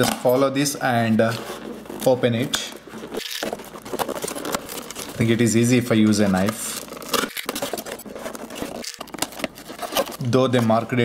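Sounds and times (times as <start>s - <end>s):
knife cutting cardboard: 1.2s - 10.8s.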